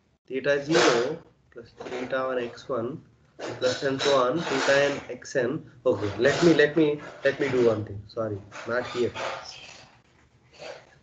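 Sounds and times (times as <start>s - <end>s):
man speaking: 0.3s - 9.3s.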